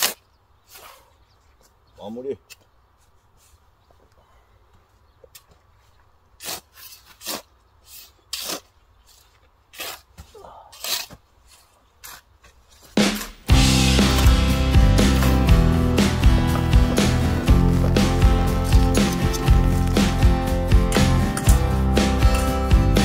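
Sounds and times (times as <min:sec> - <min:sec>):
shovels scraping sandy soil: 0:00.0 - 0:01.1, 0:06.2 - 0:14.4, 0:15.0 - 0:23.0
background music with beat: 0:13.0 - 0:23.0.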